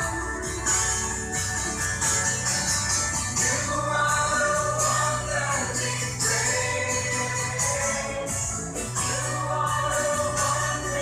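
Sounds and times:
group singing worship song: 3.3 - 11.0.

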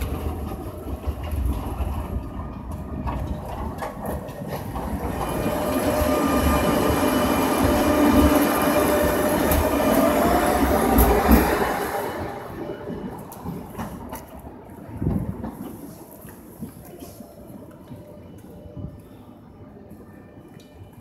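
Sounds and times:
tram passing with whine: 0.0 - 21.0.

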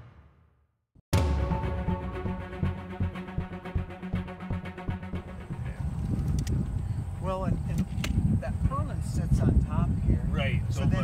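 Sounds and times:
background music: 1.1 - 6.7.

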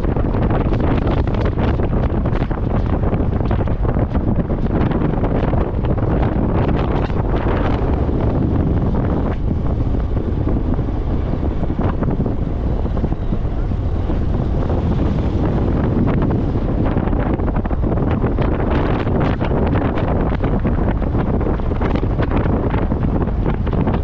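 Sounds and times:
motorcycle rumble on dirt road: 0.0 - 24.0
wind buffeting microphone: 0.0 - 24.0.

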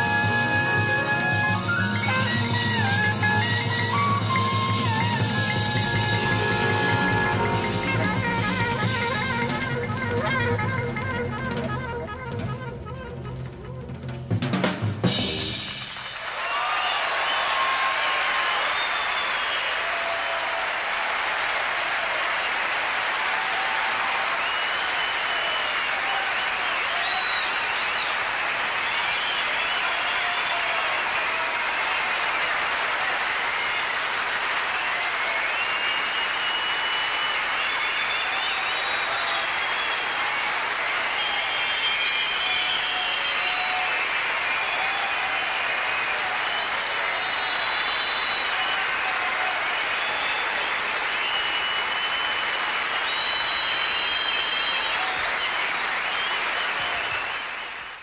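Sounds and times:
audience applauding: 0.0 - 11.9, 15.0 - 58.0
short high whistles: 18.6 - 19.8, 24.4 - 30.7, 35.2 - 40.4, 41.1 - 45.2, 46.0 - 49.0, 49.9 - 57.8.

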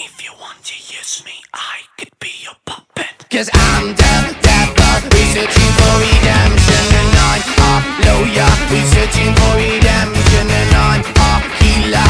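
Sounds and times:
person whispering: 0.0 - 3.5.

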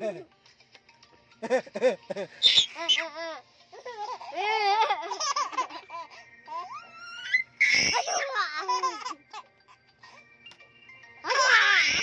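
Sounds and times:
baby laughing and squealing: 2.4 - 9.4, 11.2 - 12.0.

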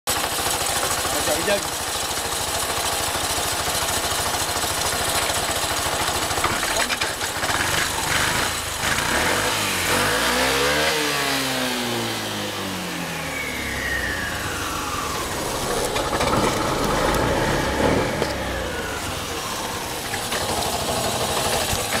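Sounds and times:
scooter engine idling and revving: 0.1 - 22.0.

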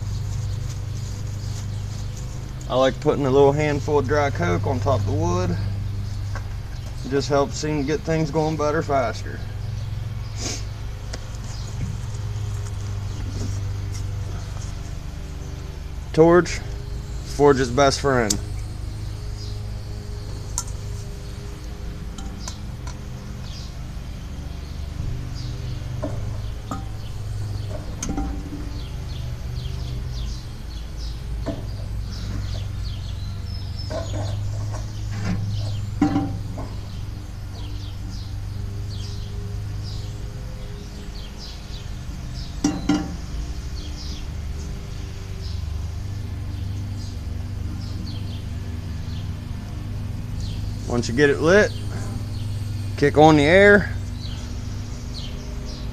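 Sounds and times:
gas torch burning with rumble: 0.0 - 55.9
sharp metal clinks and knocks: 36.0 - 36.8.

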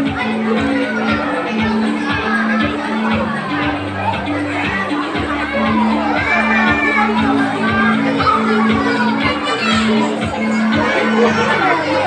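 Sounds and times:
children shouting and cheering: 0.0 - 12.0
music with repeating bass: 0.0 - 12.0.

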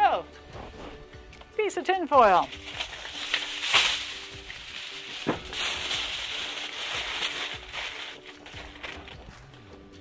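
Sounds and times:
faint background music: 0.0 - 10.0
aluminium foil crinkling: 2.1 - 9.6.

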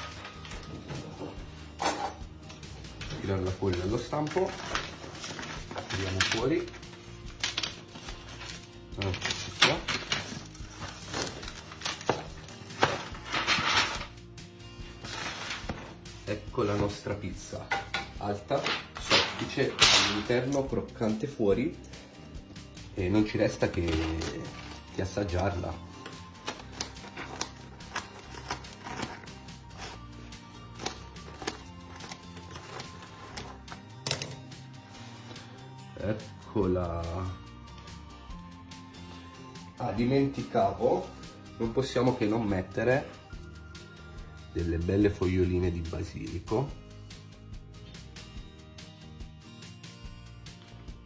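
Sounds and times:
background music: 0.0 - 51.0
crunching of pizza crust being cut: 26.3 - 33.6.

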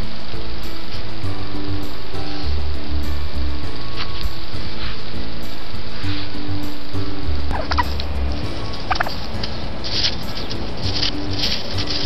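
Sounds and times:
background music: 0.0 - 12.0
wild turkeys calling: 7.1 - 12.0.

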